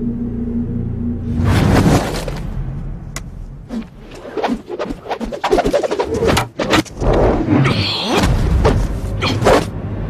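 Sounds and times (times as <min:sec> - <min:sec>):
low rumble: 0:00.0 - 0:04.2
wooden staff whooshing through air: 0:03.7 - 0:06.8.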